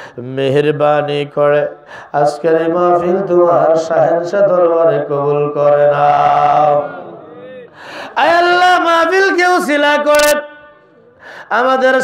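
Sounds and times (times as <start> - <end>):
man chanting through microphone: 0.2 - 12.0.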